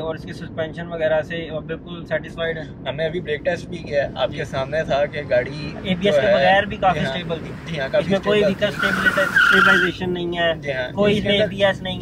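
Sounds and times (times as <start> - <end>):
tyres squealing under braking: 7.5 - 10.1.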